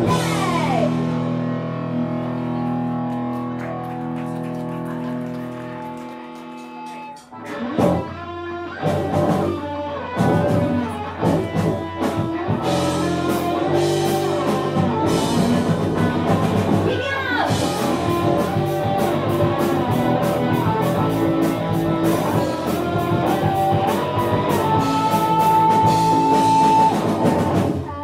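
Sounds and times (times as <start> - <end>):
rock band playing: 0.0 - 28.0
electric guitar chord ringing: 17.6 - 27.3.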